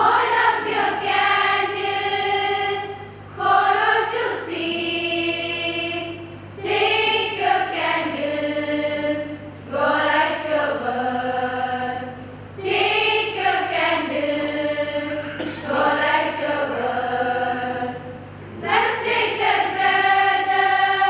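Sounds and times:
choir of women singing: 0:00.0 - 0:21.0.

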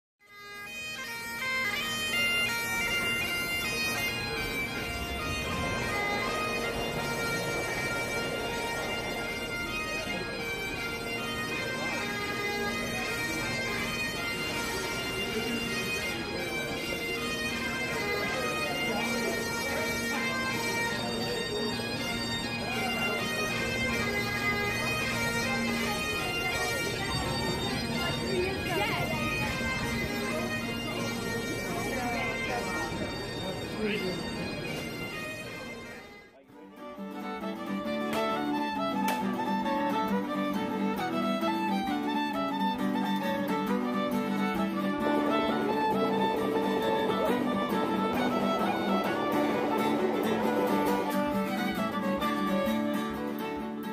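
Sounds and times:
bagpipe melody over drones: 0:00.2 - 0:53.9.

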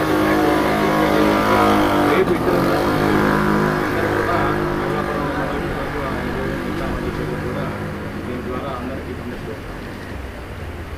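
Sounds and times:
vehicle engine running: 0:00.0 - 0:10.9.

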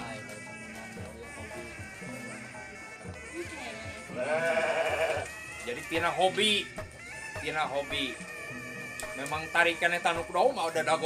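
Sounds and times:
music playing: 0:00.0 - 0:11.0
sheep bleating: 0:04.1 - 0:05.3.

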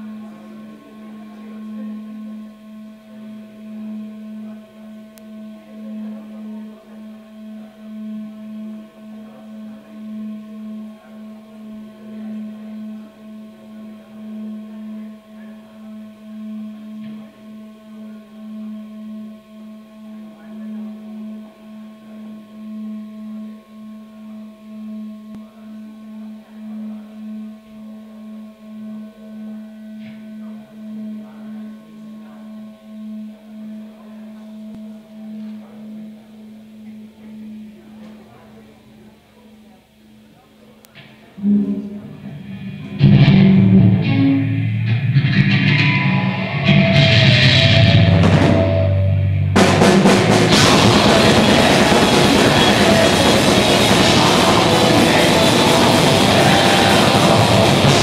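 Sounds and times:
electric guitar drone: 0:41.4 - 0:58.0.

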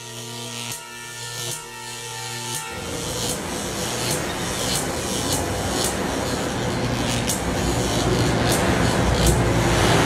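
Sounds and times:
sharp electric zaps: 0:00.0 - 0:10.0
low hum and rumble: 0:02.8 - 0:10.0.

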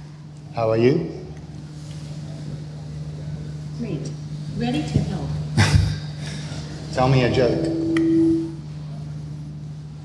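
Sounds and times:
low electrical hum: 0:00.0 - 0:10.0
steady electronic tone: 0:06.5 - 0:10.0.

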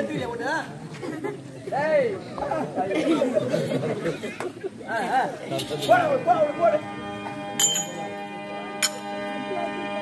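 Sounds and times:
voices talking over one another: 0:04.8 - 0:08.8.

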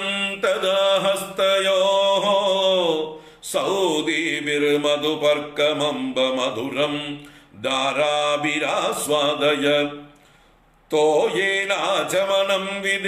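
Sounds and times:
man chanting: 0:00.0 - 0:10.2, 0:10.9 - 0:13.0
man breathing: 0:03.1 - 0:03.5, 0:07.2 - 0:07.6, 0:10.1 - 0:10.9.

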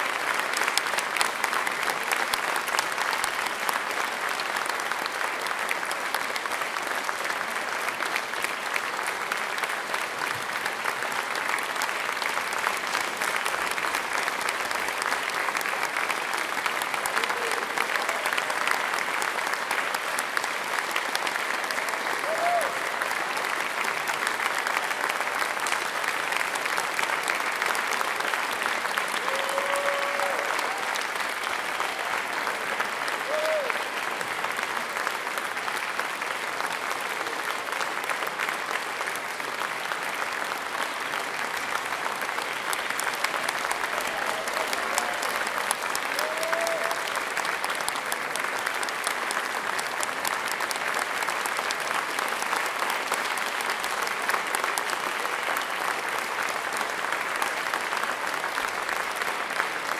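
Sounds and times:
audience applauding: 0:00.0 - 0:59.9
crowd shouts: 0:29.2 - 0:30.9.

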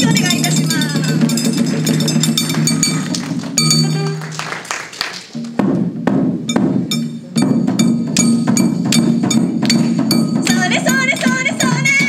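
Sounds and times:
bass drum: 0:00.0 - 0:04.2, 0:05.4 - 0:12.0
small drums and gong beat: 0:00.0 - 0:04.5, 0:05.3 - 0:12.0.

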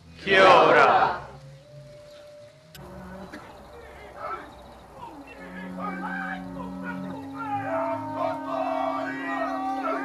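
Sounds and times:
people calling in wavering voices: 0:02.8 - 0:10.0.

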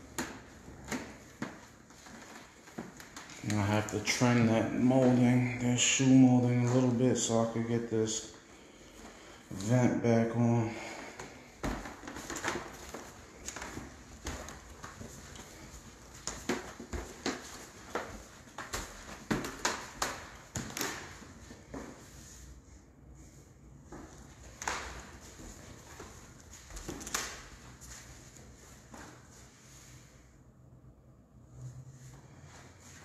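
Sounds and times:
footsteps on hardwood floor: 0:00.0 - 0:06.0, 0:10.8 - 0:22.2, 0:23.9 - 0:29.4.

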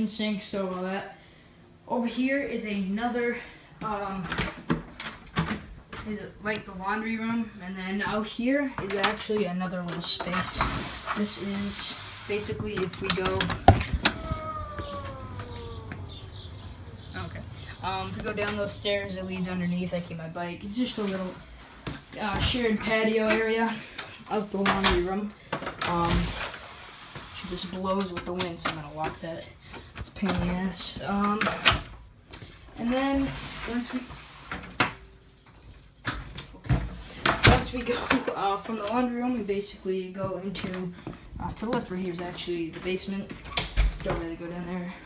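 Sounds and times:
door hinge creaking: 0:13.2 - 0:17.2.

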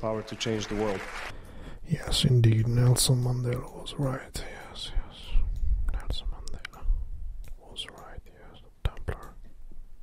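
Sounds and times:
person whispering: 0:03.4 - 0:09.5.

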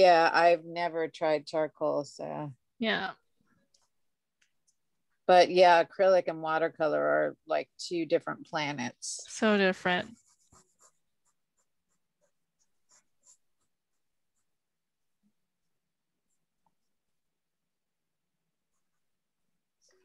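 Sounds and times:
pencil scratching on paper: 0:03.4 - 0:05.0, 0:09.4 - 0:17.2, 0:18.6 - 0:20.0.

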